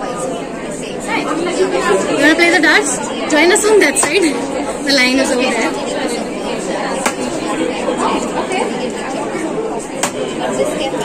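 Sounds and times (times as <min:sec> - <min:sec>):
crowd chatter: 0:00.0 - 0:11.0
dart striking dartboard: 0:07.0 - 0:07.4, 0:10.0 - 0:10.3.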